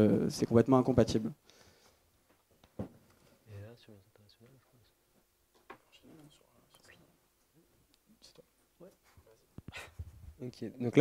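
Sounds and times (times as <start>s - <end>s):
microphone handling knocks: 9.6s - 10.4s.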